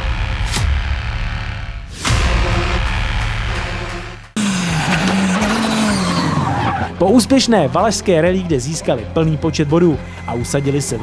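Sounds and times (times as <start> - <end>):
music: 0.0 - 11.0
rally car engine revving past: 4.4 - 7.0.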